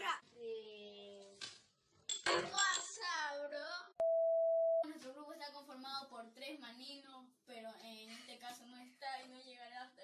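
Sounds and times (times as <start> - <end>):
child's voice: 2.4 - 4.0, 4.8 - 10.0.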